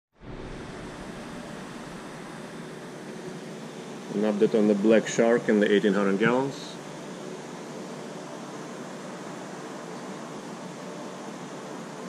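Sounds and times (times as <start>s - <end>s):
aquarium water circulation hiss: 0.2s - 12.0s.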